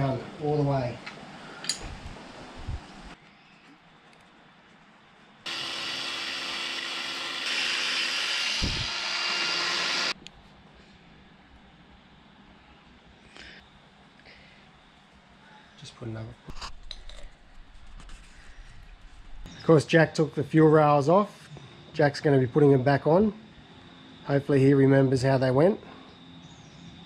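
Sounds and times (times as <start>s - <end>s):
angle grinder polishing metal: 5.5s - 10.2s.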